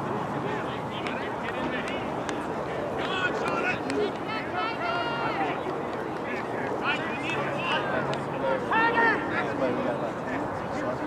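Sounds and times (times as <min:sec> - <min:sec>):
overlapping voices outdoors: 0:00.0 - 0:11.0
people calling out: 0:03.0 - 0:05.6.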